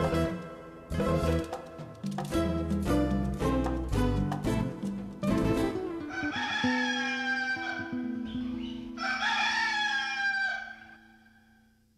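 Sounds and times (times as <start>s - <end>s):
rooster crowing: 6.0s - 8.2s, 8.9s - 11.6s.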